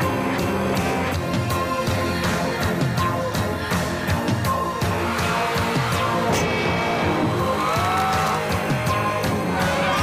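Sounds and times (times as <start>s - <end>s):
rock music with electric guitar: 0.0s - 10.0s.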